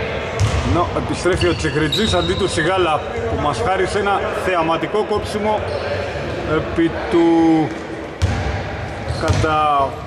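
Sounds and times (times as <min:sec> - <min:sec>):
basketball bouncing on court floor: 0:00.4 - 0:02.3, 0:08.2 - 0:09.6.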